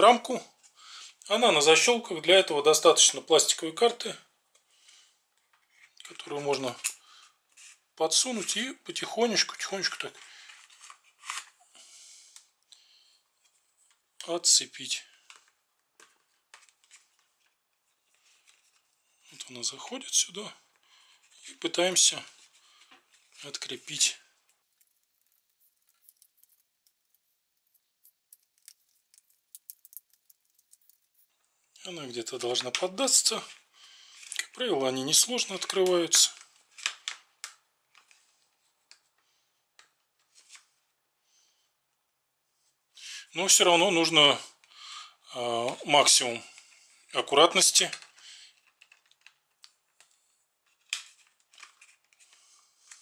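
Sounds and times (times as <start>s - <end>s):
plastic card scraping bezel: 24.8s - 31.2s.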